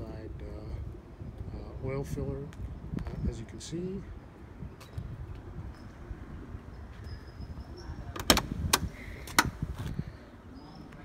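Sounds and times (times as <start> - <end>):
car door latch clicks: 8.2 - 9.6.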